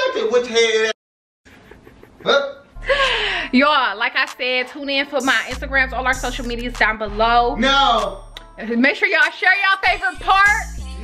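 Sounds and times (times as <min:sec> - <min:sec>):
woman laughing: 0:01.5 - 0:03.5.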